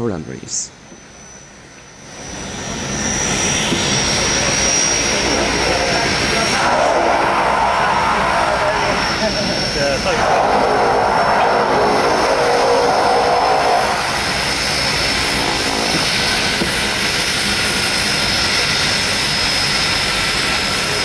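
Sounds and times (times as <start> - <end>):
propeller noise: 0.0 - 21.0
turbine whine: 0.0 - 21.0.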